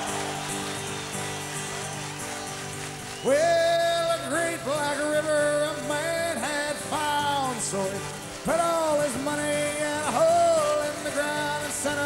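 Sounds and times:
guitar and band accompaniment: 0.0s - 12.0s
person singing: 3.2s - 12.0s.

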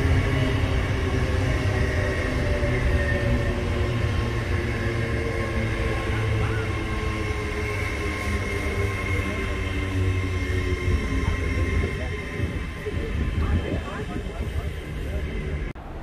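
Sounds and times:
train traction hum: 0.0s - 16.0s
wheels rumbling on rail: 0.0s - 16.0s.

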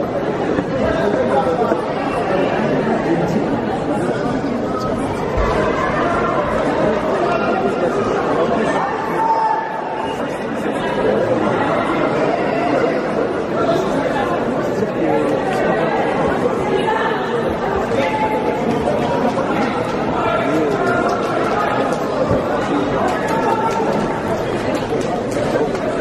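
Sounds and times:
murmur of overlapping voices: 0.0s - 26.0s.

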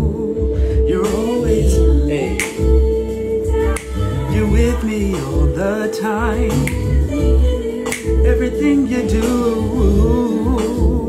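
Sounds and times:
heavy bass beat: 0.0s - 11.0s
song with wavering vocal: 0.0s - 11.0s.

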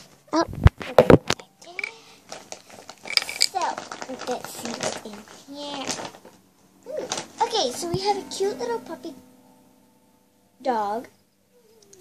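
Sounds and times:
child's voice: 0.3s - 2.2s, 3.5s - 6.2s, 6.8s - 9.2s, 10.6s - 11.1s
gift bag rustling: 1.7s - 8.2s.

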